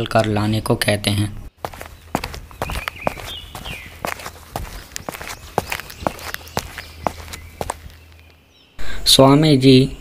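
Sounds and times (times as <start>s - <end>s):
walking footsteps: 1.6s - 8.4s.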